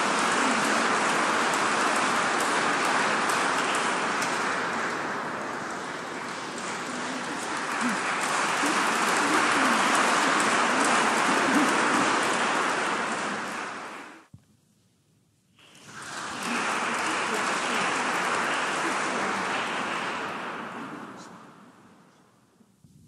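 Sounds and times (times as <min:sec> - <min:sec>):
audience applauding: 0:00.0 - 0:14.3, 0:15.6 - 0:22.2.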